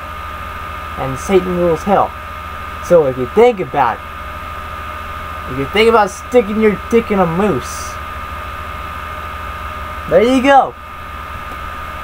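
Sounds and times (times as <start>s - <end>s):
high whine: 0.0s - 12.0s
low hum: 0.0s - 12.0s.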